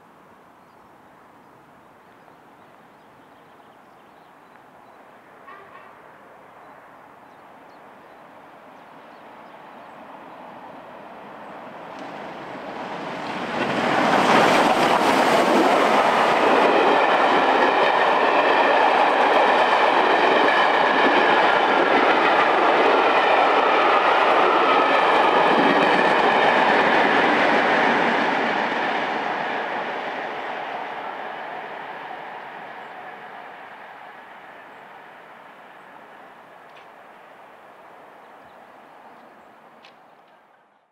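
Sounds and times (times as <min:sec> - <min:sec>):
steam locomotive passing: 0:08.1 - 0:40.6.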